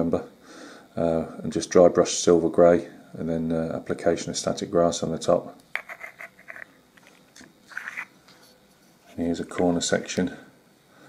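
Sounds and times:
small pieces tapping and scraping: 0:05.7 - 0:08.1.

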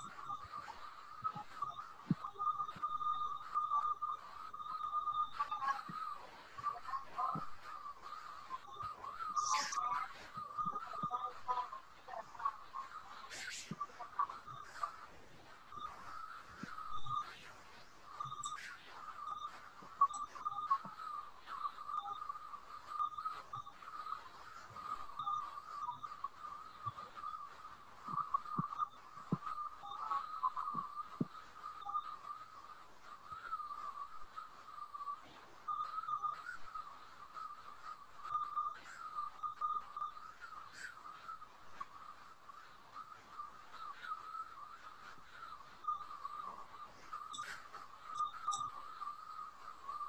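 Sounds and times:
faint clicks: 0:00.0 - 0:50.0
faint high-pitched whine: 0:00.0 - 0:50.0.

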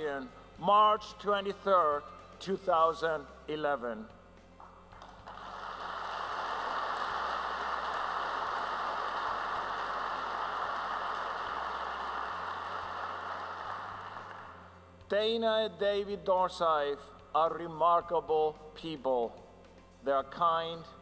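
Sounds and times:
audience applauding: 0:05.3 - 0:14.6.

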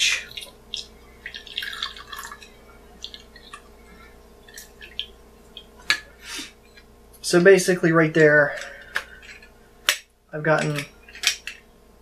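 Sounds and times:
juice dripping into cup: 0:00.0 - 0:06.9.

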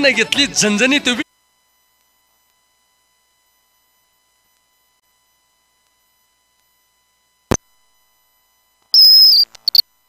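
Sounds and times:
high-pitched whistle tone: 0:08.9 - 0:09.8
short chirps: 0:09.0 - 0:09.8.

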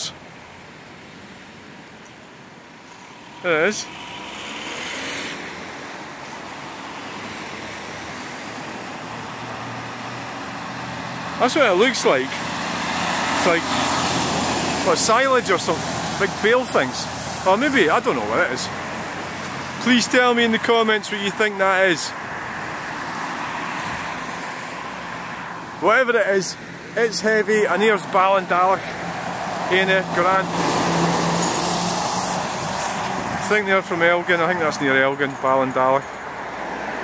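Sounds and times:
road noise: 0:00.0 - 0:37.0.

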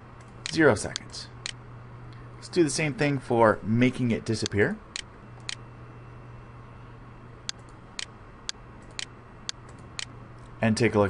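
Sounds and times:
low steady hum: 0:00.0 - 0:11.0
computer mouse clicking: 0:08.8 - 0:10.1.

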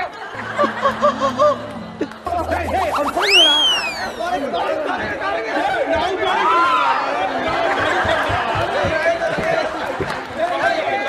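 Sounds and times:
falling whistle: 0:02.7 - 0:04.4.

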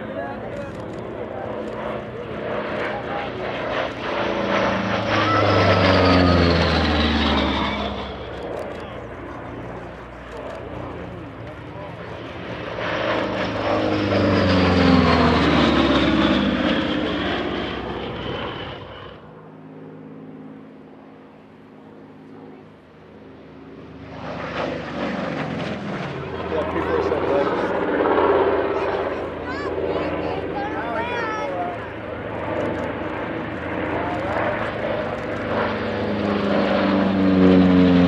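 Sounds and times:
spectators talking: 0:00.0 - 0:16.6, 0:25.4 - 0:37.0
distant propeller plane engine drone: 0:00.0 - 0:38.0.

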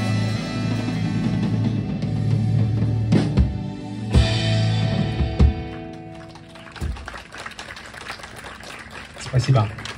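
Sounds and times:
audience clapping: 0:05.4 - 0:09.9.

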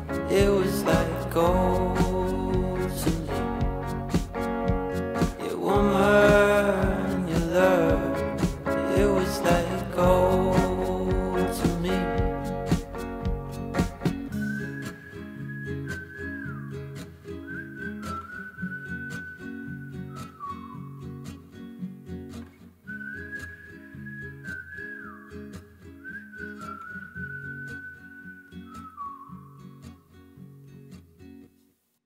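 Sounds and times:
backing music with steady beat: 0:00.0 - 0:14.5
whistled melody: 0:00.0 - 0:21.5, 0:22.8 - 0:30.0.

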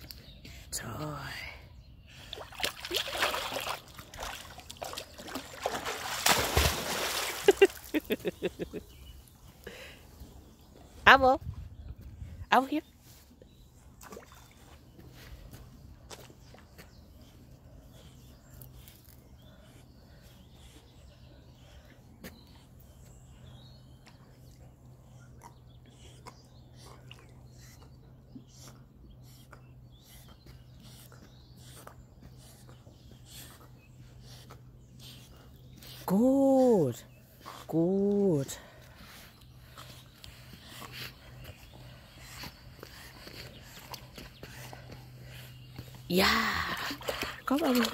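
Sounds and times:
steady low hum: 0:00.4 - 0:47.9
small water splashes: 0:02.2 - 0:08.2, 0:14.0 - 0:14.7, 0:46.6 - 0:47.9.

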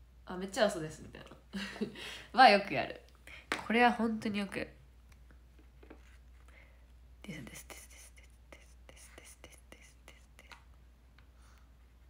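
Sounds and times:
steady low hum: 0:00.0 - 0:12.0
woman whispering: 0:07.2 - 0:10.6.

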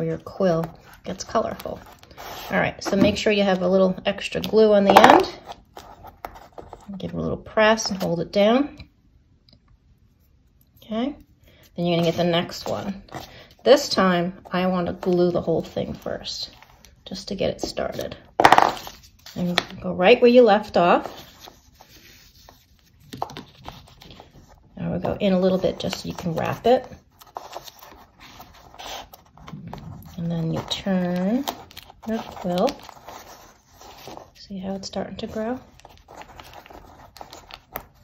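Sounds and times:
newspaper rustling and scraping: 0:18.4 - 0:38.0.

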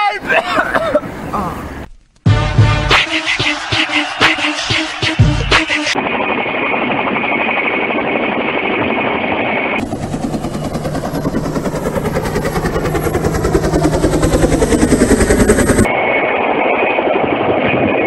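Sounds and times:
helicopter rotor blades chopping: 0:02.4 - 0:18.0.

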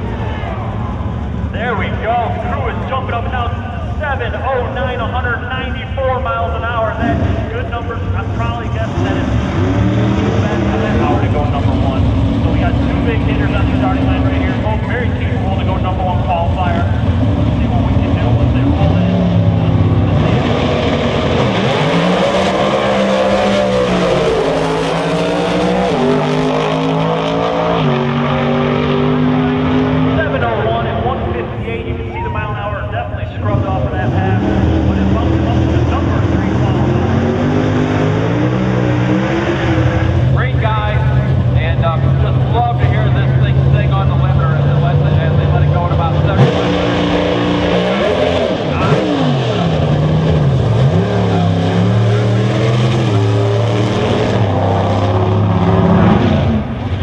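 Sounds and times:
race car engines shifting gears: 0:00.0 - 0:57.0.

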